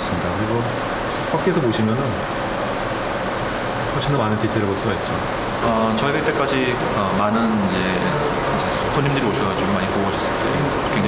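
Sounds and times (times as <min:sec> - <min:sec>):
steady rushing background noise: 0:00.0 - 0:11.0.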